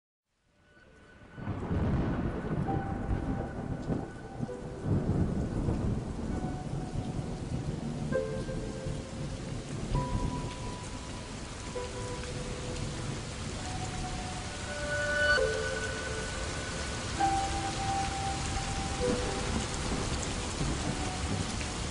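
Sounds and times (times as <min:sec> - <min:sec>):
faint sustained music notes: 0:00.5 - 0:21.9
heavy rain falling: 0:00.9 - 0:21.9
low thunder rumbling: 0:01.4 - 0:21.9.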